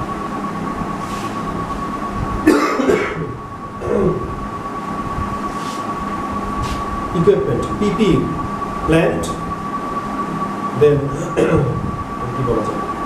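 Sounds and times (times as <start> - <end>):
room hum: 0.0 - 13.0
man coughing: 2.5 - 4.2, 11.1 - 11.8.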